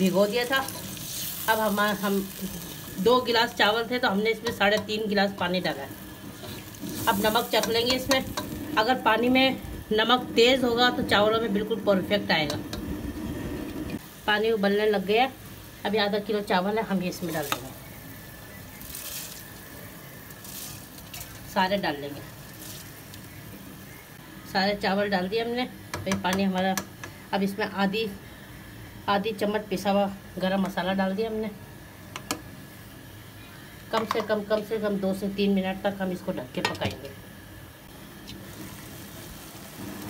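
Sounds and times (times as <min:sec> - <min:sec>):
water boiling in a pot: 0:00.0 - 0:24.2, 0:35.6 - 0:40.0.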